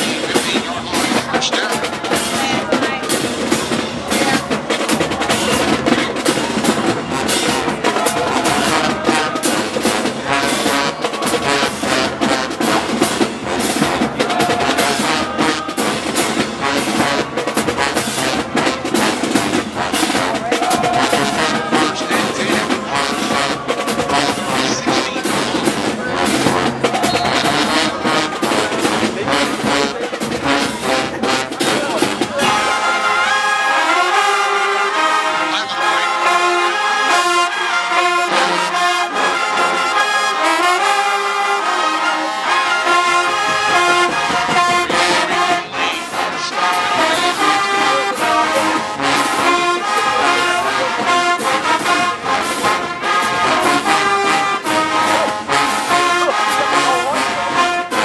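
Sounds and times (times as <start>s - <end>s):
heavy drum beat: 0.0s - 33.0s, 42.8s - 58.0s
marching band brass: 0.0s - 58.0s.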